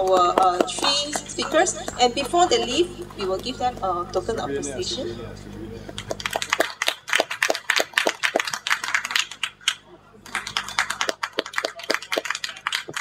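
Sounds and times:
audience clapping: 0:00.0 - 0:02.4, 0:05.9 - 0:13.0.

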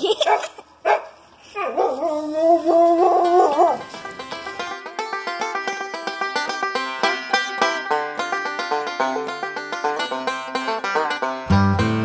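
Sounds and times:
person laughing: 0:00.0 - 0:00.8.

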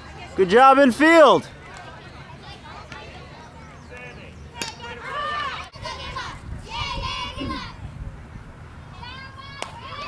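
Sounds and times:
faint voices: 0:00.0 - 0:08.0.

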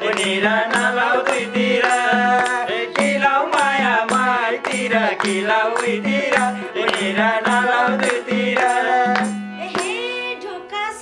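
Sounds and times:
hand drum beating: 0:00.0 - 0:10.3
folk singing: 0:00.0 - 0:11.0
harmonium held notes: 0:00.0 - 0:11.0.

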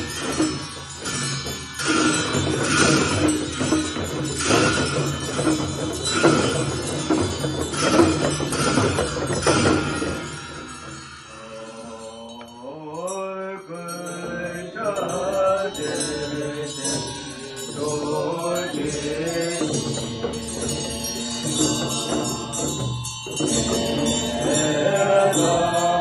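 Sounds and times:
hand drums beating slowly: 0:00.0 - 0:26.0
group chanting: 0:11.4 - 0:22.8, 0:23.4 - 0:26.0.

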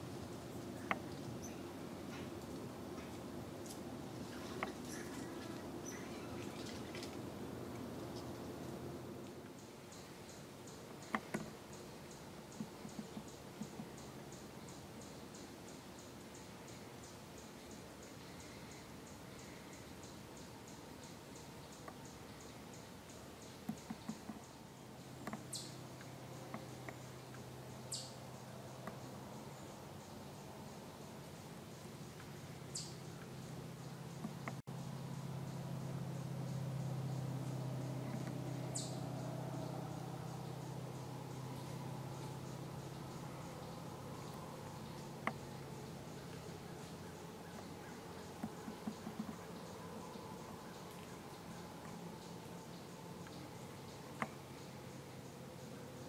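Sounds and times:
low hum: 0:00.0 - 0:15.8, 0:17.4 - 0:56.0
faint steady hiss: 0:00.0 - 0:56.0
sharp ticks and snaps: 0:09.2 - 0:16.8, 0:17.4 - 0:30.9, 0:31.7 - 0:55.8.

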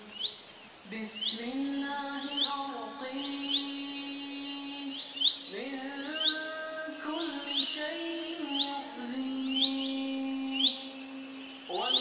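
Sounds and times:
person singing supplication: 0:00.9 - 0:12.0.

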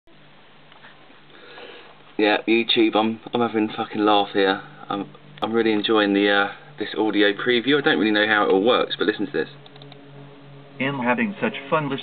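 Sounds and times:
low steady hum: 0:00.1 - 0:12.0.

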